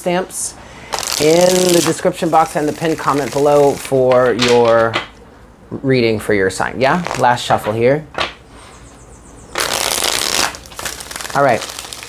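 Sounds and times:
cards being riffle-shuffled: 0:00.9 - 0:04.9, 0:06.9 - 0:07.8, 0:09.6 - 0:12.0.

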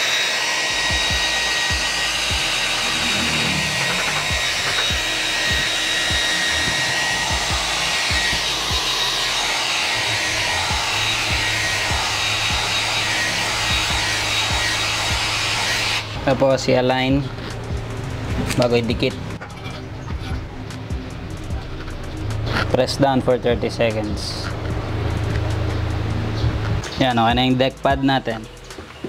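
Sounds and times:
hair dryer running: 0:00.0 - 0:19.4.

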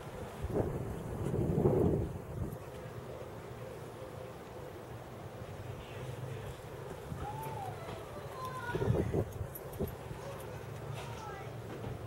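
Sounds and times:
wind buffeting microphone: 0:00.0 - 0:02.7, 0:06.8 - 0:10.3.

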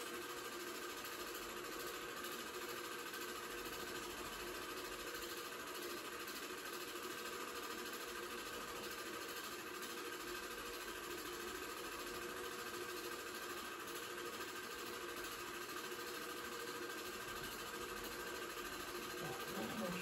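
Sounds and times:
film projector whirring: 0:00.0 - 0:20.0.

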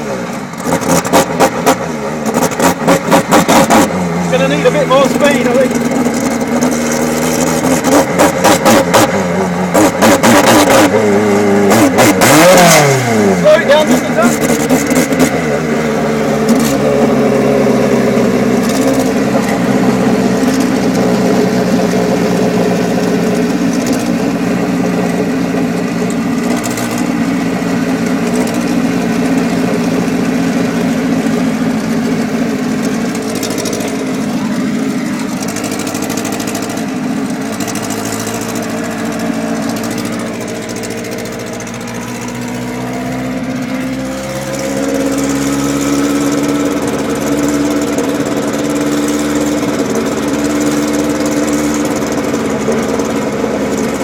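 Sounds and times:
racing car engine running: 0:00.0 - 0:54.0.

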